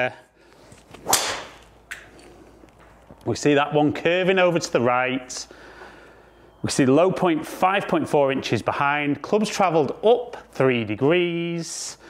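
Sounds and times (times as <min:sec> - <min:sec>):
golf club swish: 0:00.6 - 0:01.8
golf club striking ball: 0:01.0 - 0:02.0.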